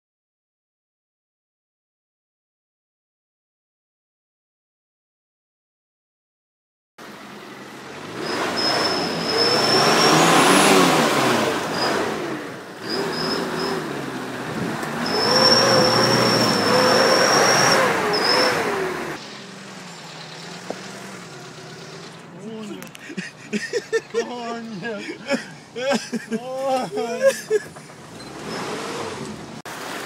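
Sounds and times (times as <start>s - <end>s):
engine revving hard: 7.8s - 19.2s, 21.0s - 30.0s
high steady squeal: 8.2s - 11.0s, 12.8s - 14.0s, 14.8s - 22.2s.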